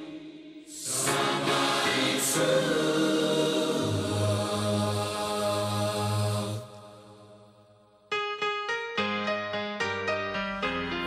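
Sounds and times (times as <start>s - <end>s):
a cappella vocal harmonies: 0.0s - 8.0s.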